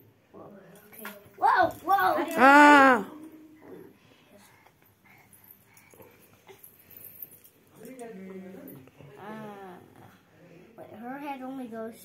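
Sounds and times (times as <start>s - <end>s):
whining voice: 2.4s - 3.1s.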